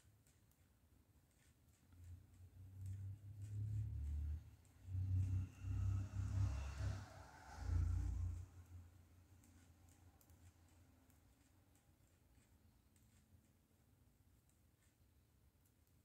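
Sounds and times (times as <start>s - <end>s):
knitting needles clicking: 0.0s - 6.3s, 8.3s - 13.6s
low uneven rumble: 2.6s - 9.2s.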